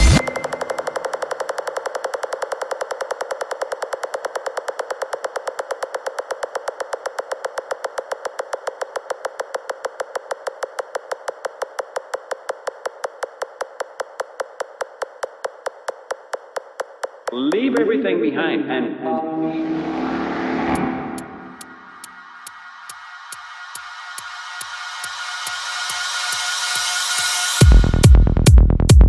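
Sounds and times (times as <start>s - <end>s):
synthesizer pulsing rapidly: 0.0s - 16.4s, 19.2s - 27.8s
kick drum and bass: 0.0s - 18.0s, 21.5s - 29.0s.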